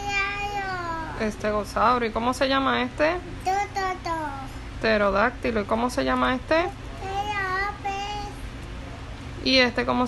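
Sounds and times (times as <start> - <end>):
toddler making sing-song sounds: 0.0 - 1.2, 3.5 - 4.5, 7.0 - 8.4.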